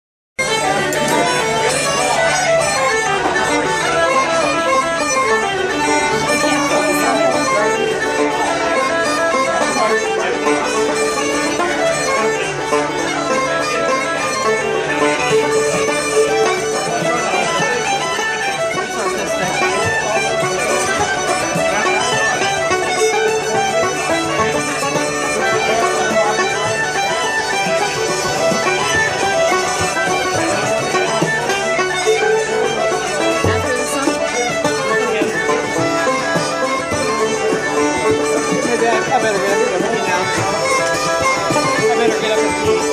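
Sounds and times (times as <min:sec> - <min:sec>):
folk session music led by fiddle: 0:00.4 - 0:42.9
pub chatter: 0:00.4 - 0:42.9.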